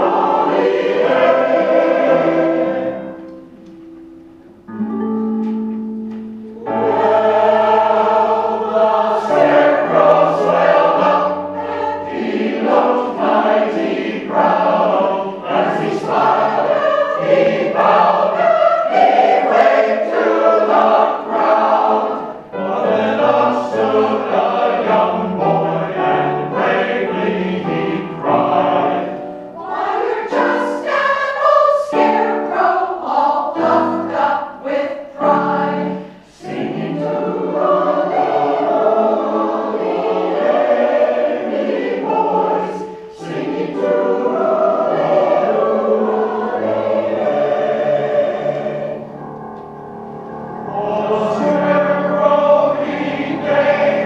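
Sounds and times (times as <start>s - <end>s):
choir singing: 0.0s - 5.0s, 6.4s - 54.0s.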